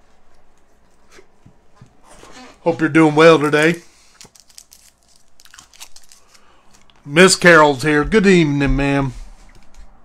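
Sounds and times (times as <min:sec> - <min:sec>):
crinkling and light clicking: 0:03.4 - 0:07.1.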